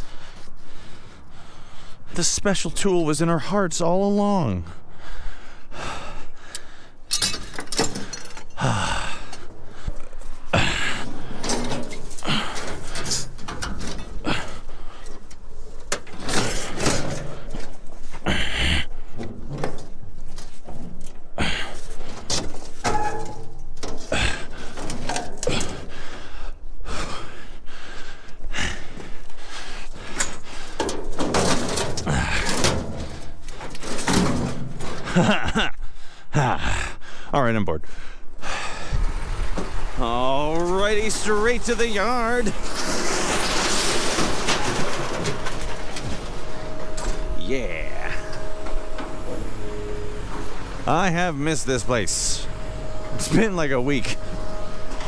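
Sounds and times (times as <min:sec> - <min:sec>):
scrap metal clunking: 0:21.8 - 0:26.1, 0:30.0 - 0:35.2, 0:39.0 - 0:47.4, 0:48.1 - 0:55.0.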